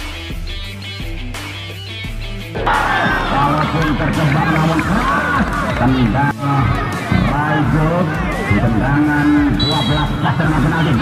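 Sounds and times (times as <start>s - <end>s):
music with steady bass line: 0.0s - 11.0s
crowd shouting and cheering: 2.4s - 11.0s.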